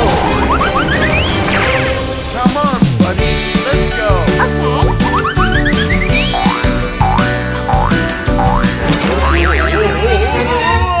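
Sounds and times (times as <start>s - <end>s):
wobbling warble over deep bass: 0.0s - 1.7s, 4.4s - 10.0s
background music: 0.0s - 11.0s
cartoon boing swoops: 0.2s - 1.4s, 4.4s - 7.2s, 7.8s - 10.0s.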